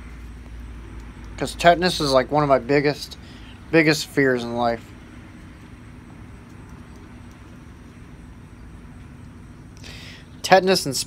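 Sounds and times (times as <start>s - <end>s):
distant road traffic: 0.0s - 11.0s
low steady hum: 0.0s - 11.0s.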